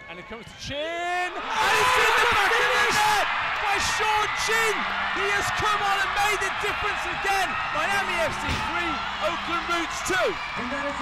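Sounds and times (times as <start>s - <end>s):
stadium crowd noise: 0.0s - 11.0s
voices shouting and cheering: 0.1s - 11.0s.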